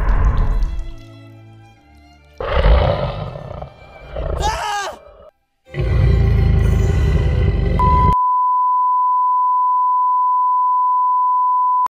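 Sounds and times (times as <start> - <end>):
bass-heavy music: 5.8 - 8.2
electronic beep tone: 7.8 - 11.9.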